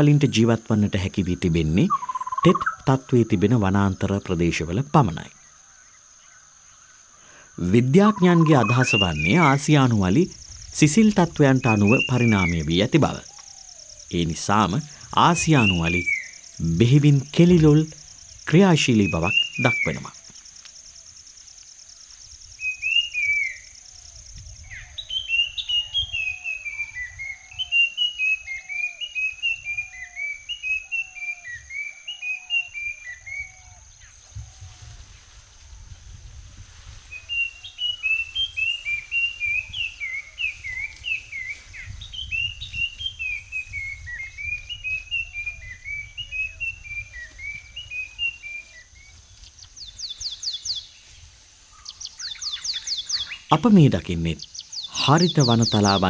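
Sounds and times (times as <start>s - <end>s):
bird singing whistled notes: 1.8s - 3.0s, 8.0s - 21.1s, 22.4s - 34.6s, 37.1s - 51.1s, 51.7s - 53.6s, 54.3s - 56.0s.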